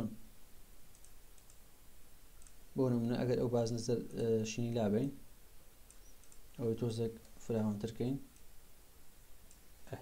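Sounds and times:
computer mouse click: 0.9 - 1.6, 2.4 - 2.6, 5.8 - 6.6, 9.4 - 9.7.

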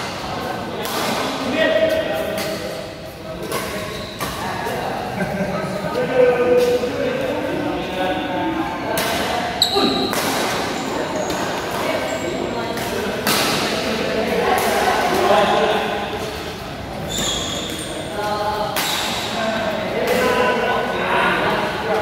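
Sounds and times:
players' voices echoing: 0.0 - 22.0
shoes squeaking on court: 3.4 - 4.8, 9.6 - 13.1, 15.3 - 18.2.

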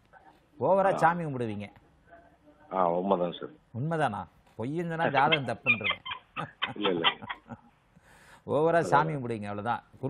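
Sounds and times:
man talking: 0.6 - 1.8, 2.7 - 7.3, 8.4 - 10.0
man chuckling: 6.4 - 7.6.

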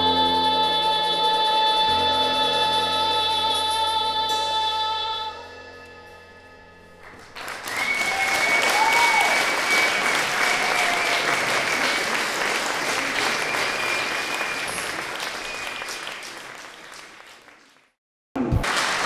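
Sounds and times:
audience applauding: 7.0 - 19.0
long high whistle: 7.6 - 11.8, 13.0 - 16.3.

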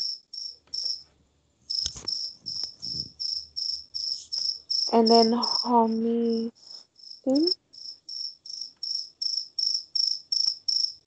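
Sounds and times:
cricket chirping: 0.0 - 1.0, 1.7 - 6.0, 6.6 - 11.0
sharp click: 1.8 - 2.8.

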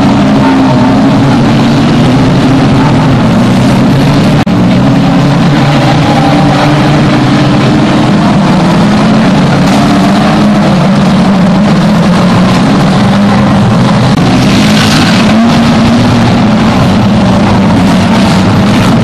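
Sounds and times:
racing car engines: 0.0 - 19.0.

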